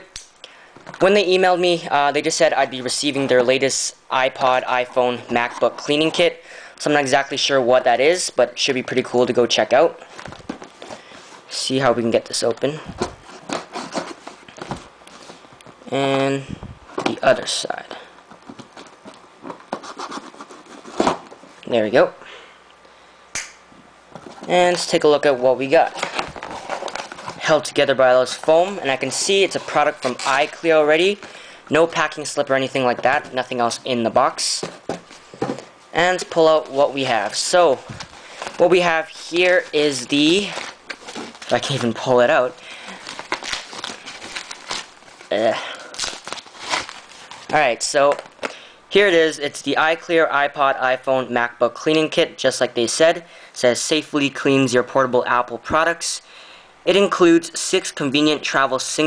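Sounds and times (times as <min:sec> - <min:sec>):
packing wrap crinkling: 0:35.0 - 0:48.6.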